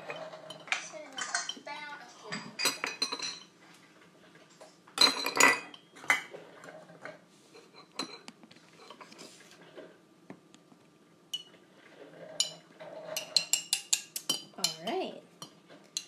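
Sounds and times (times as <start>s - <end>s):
metal spoon scraping glass bowl: 12.3s - 14.8s.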